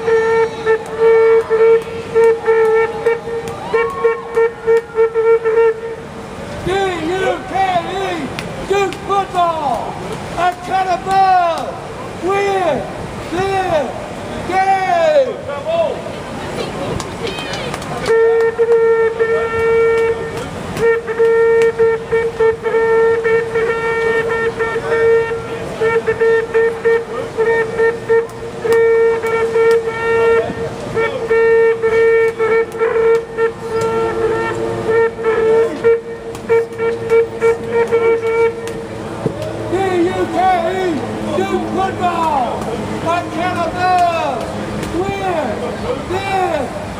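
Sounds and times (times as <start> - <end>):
horn long steady note: 0.0 - 16.2, 18.0 - 46.9
crowd talking: 0.0 - 46.9.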